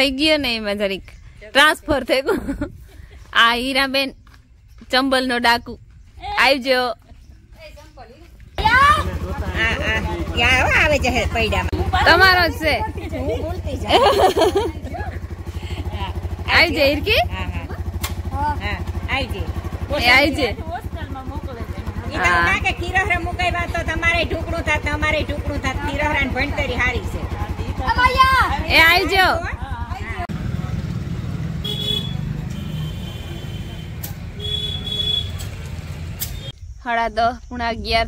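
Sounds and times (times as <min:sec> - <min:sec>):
voices calling and laughing: 0:00.0 - 0:04.1, 0:05.9 - 0:38.0
motorcycle engine idling: 0:07.0 - 0:36.6
short high horn toot: 0:31.6 - 0:35.5.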